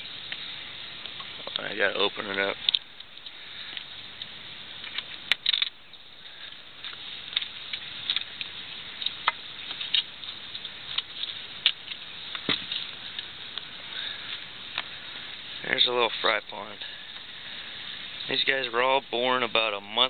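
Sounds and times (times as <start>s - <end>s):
steady faint hiss: 0.0s - 20.0s.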